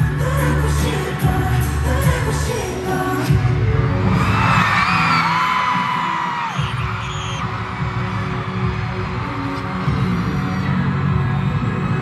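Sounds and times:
pop concert music over speakers: 0.0 - 12.0.

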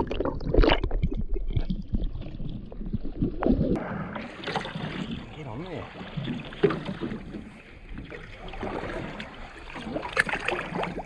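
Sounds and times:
seawater splashing against boat: 3.8 - 11.0
small splashes: 4.2 - 11.0.

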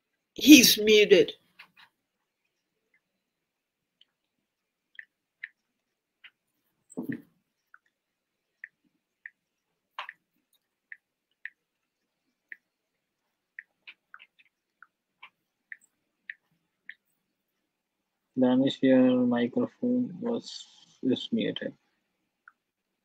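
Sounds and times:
faint clicks and taps: 1.4 - 17.8, 21.9 - 23.0.

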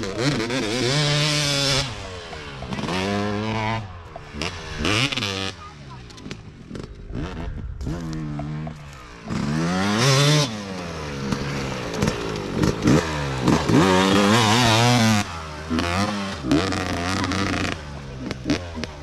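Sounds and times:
dirt bike engines revving: 0.0 - 19.0.

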